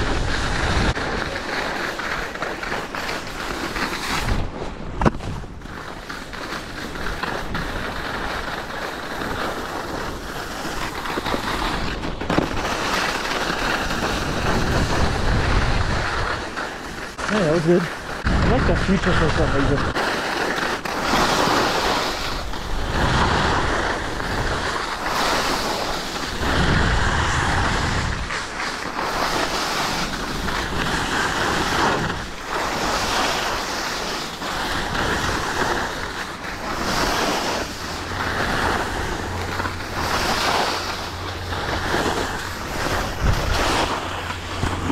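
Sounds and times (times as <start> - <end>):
wind on microphone: 0.0 - 1.6, 3.6 - 20.0, 21.0 - 44.9
skis scraping over packed snow: 0.0 - 44.9.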